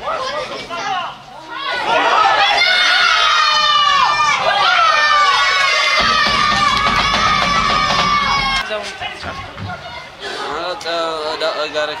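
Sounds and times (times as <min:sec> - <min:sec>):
voices shouting and calling: 0:00.0 - 0:12.0.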